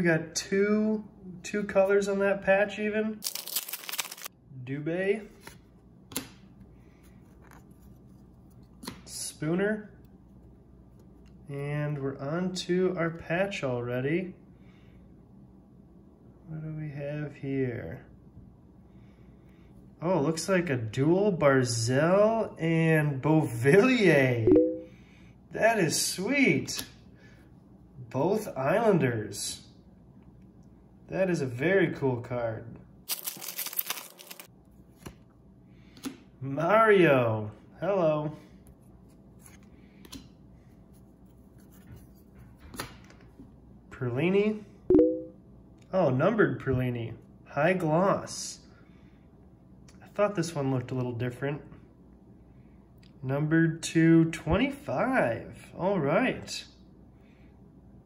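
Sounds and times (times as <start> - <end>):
foil wrapper crinkling: 3.2 - 4.3, 33.1 - 34.5.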